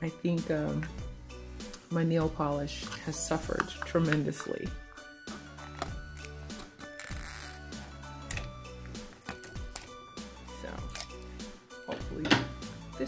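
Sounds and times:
background music: 0:00.0 - 0:13.0
scissors cutting shrink-wrap: 0:06.1 - 0:08.5, 0:09.2 - 0:10.0, 0:10.8 - 0:11.3.

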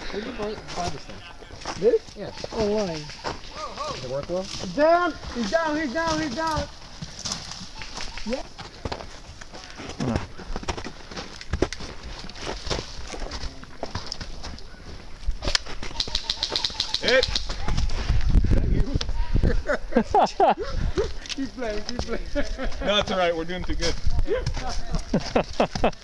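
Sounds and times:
footsteps crunching through snow: 0:00.1 - 0:16.0.

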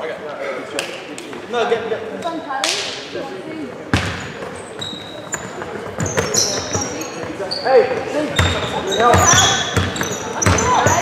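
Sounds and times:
sneakers squeaking on floor: 0:03.8 - 0:11.0
ball thud echoing in hall: 0:03.9 - 0:04.5, 0:08.3 - 0:11.0.

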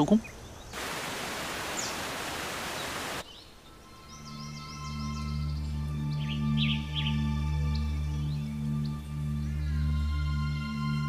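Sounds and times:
hiss-like noise: 0:00.8 - 0:03.4
soft ambient music: 0:03.6 - 0:11.0.

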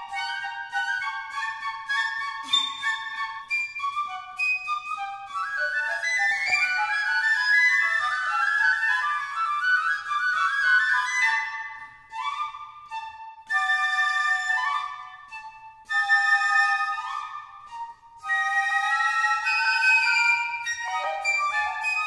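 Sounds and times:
flutes playing together: 0:00.0 - 0:22.0.

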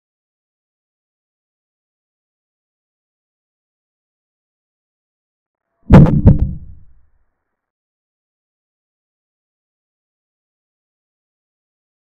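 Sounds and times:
heavy thuds: 0:05.9 - 0:06.9.

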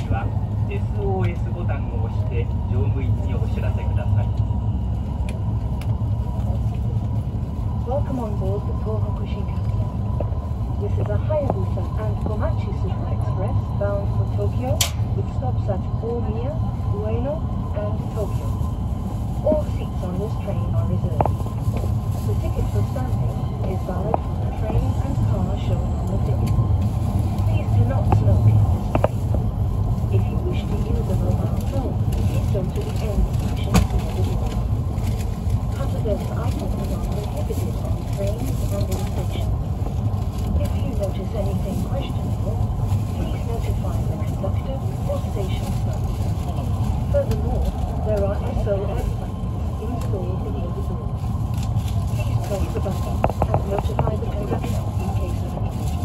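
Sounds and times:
train running rumble: 0:00.0 - 0:56.0
indistinct voices: 0:19.4 - 0:56.0.

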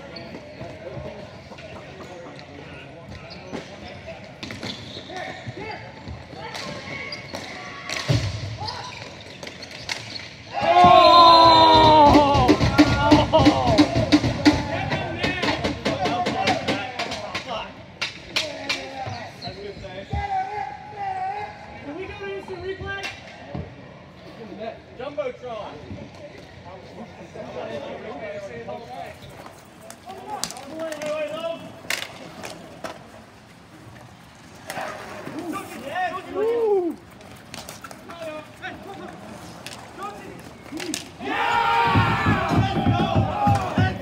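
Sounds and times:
hockey sticks and ball clacking: 0:00.0 - 0:20.4, 0:28.9 - 0:44.0
crowd shouting and cheering: 0:10.5 - 0:15.7, 0:40.8 - 0:44.0.

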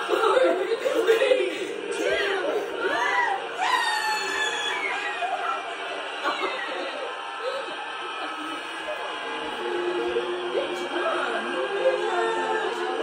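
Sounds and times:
high voices shrieking and laughing: 0:00.0 - 0:13.0.

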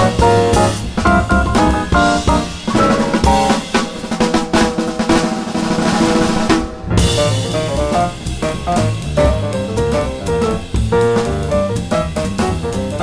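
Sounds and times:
drum kit solo with snare and cymbals: 0:00.0 - 0:13.0
jazz piano trio: 0:00.0 - 0:13.0.

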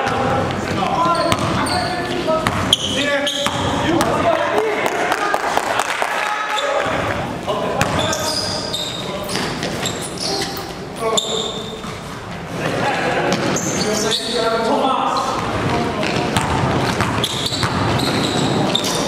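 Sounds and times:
basketball bouncing on gym floor: 0:00.0 - 0:01.8, 0:02.4 - 0:04.2, 0:07.8 - 0:08.2, 0:15.3 - 0:19.0
sneakers squeaking: 0:00.0 - 0:04.3, 0:07.6 - 0:12.5, 0:13.2 - 0:19.0.

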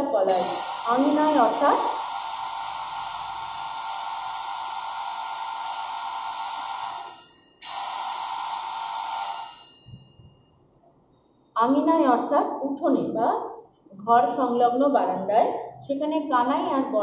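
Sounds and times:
buzzing tone: 0:00.3 - 0:10.6.

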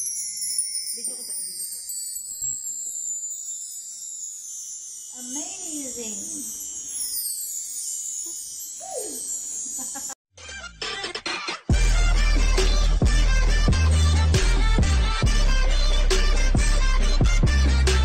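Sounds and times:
bar chimes ringing: 0:00.0 - 0:10.2.

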